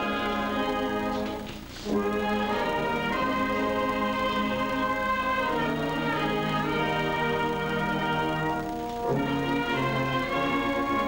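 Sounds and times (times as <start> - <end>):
slow instrumental music: 0.0 - 11.0.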